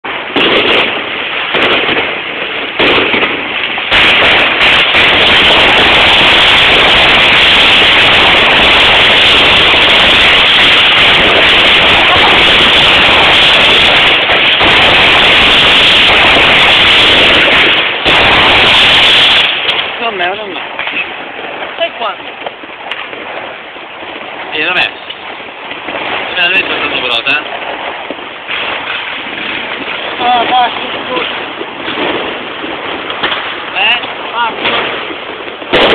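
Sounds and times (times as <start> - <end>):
fireworks and firecrackers banging: 0.0 - 35.9.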